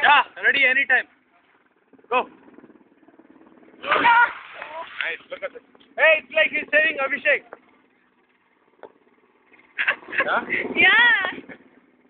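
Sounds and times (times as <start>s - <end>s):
people shouting: 3.8s - 5.0s
loud splash into water: 3.8s - 5.1s.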